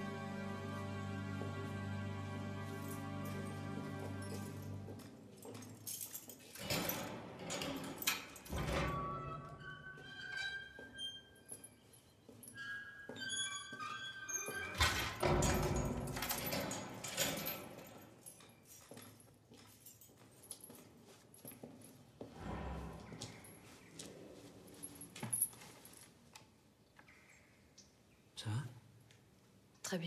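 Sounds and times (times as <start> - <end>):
quiet music with held high notes: 0.0 - 5.4.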